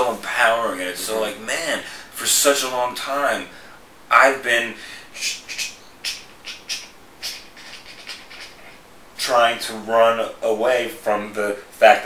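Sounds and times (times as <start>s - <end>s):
man stuttering breathy bursts: 4.8s - 5.7s.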